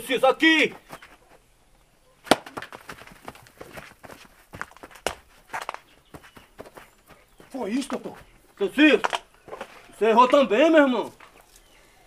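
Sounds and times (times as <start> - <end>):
footsteps scuffing on dirt: 0.6 - 1.4, 2.3 - 11.7.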